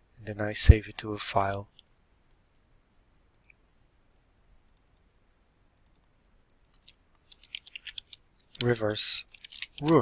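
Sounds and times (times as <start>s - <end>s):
computer mouse clicking: 3.3s - 3.6s, 4.6s - 5.1s, 5.8s - 10.0s.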